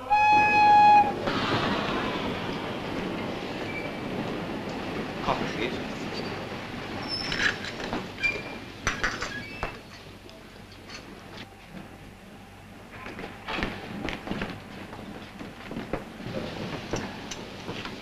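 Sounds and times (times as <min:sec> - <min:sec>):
train whistle: 0:00.0 - 0:01.3
train running noise: 0:00.0 - 0:18.0.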